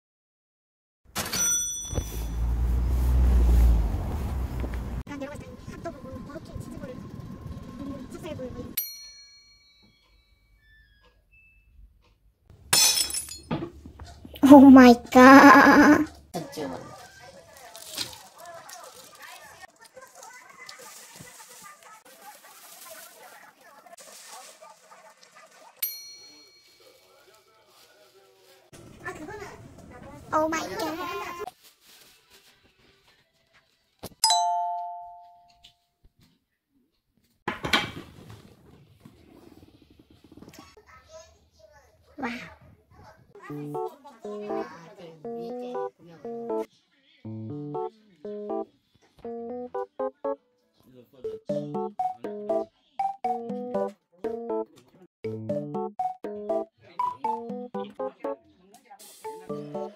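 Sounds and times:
bright ding: 1.2s - 2.5s, 34.2s - 35.6s.

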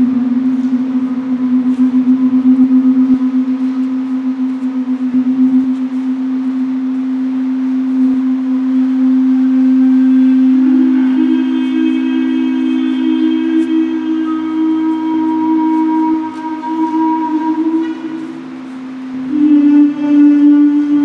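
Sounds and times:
amplified string instrument drone: 0.0s - 21.0s.

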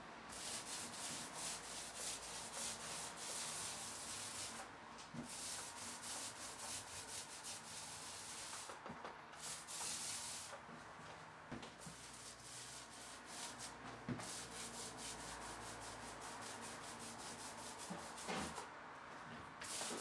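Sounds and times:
paint roller swishing on wallpaper: 0.3s - 20.0s.

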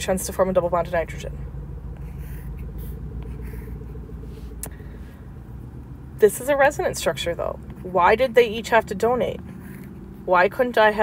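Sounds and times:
low rumble and hum: 0.0s - 11.0s.

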